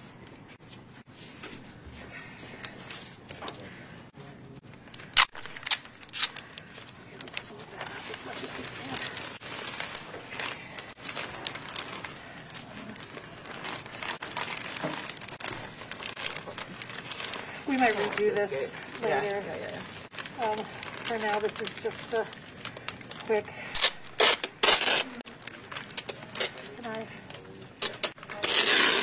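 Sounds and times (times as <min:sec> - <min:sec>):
plastic sheeting crinkling: 0:04.6 - 0:29.0.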